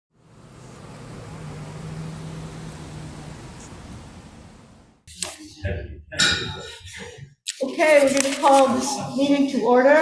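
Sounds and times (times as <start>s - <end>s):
distant road traffic: 0.1s - 5.4s.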